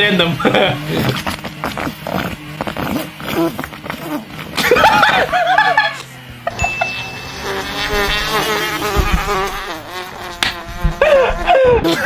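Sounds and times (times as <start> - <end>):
car engine buzzing at high revs: 0.0 - 11.8.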